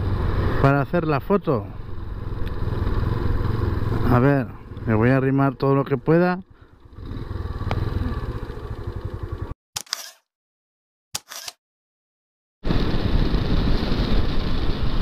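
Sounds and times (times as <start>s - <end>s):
motorcycle engine: 0.0s - 10.2s
short clicks: 9.8s - 10.3s, 11.2s - 11.6s.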